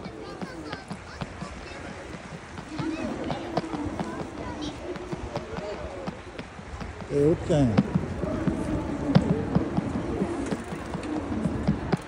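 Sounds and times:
bird cooing: 0.0s - 6.2s, 8.2s - 12.0s.

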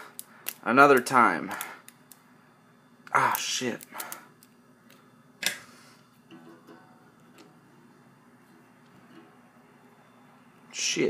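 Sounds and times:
guitar strings ringing: 6.2s - 10.4s.

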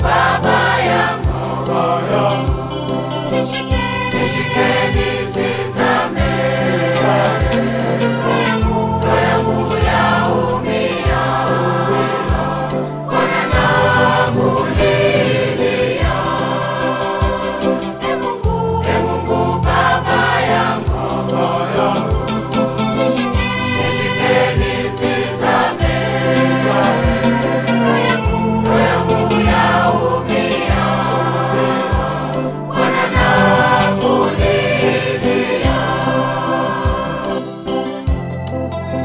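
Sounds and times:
sustained bass line: 0.0s - 37.2s
choir singing in harmony: 0.0s - 39.0s.

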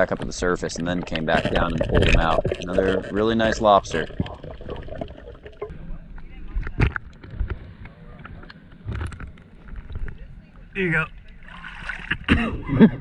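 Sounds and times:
water sloshing and gurgling: 0.0s - 5.7s, 6.6s - 12.8s.

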